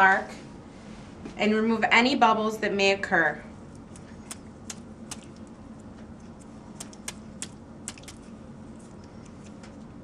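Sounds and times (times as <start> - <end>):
steady low hum: 0.0 - 10.0
fingers flicking plastic syringe: 3.8 - 5.5, 6.8 - 9.7.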